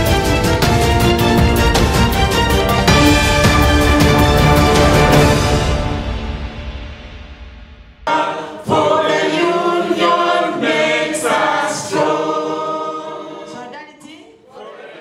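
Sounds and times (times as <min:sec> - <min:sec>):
theme tune: 0:00.0 - 0:12.6
group of people singing: 0:08.1 - 0:15.0.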